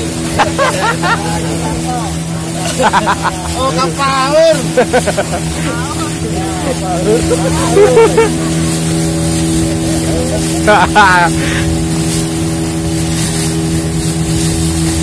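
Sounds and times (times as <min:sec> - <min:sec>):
boat motor running: 0:00.0 - 0:15.0
water rushing and splashing: 0:00.0 - 0:15.0
voices shouting: 0:00.4 - 0:09.0.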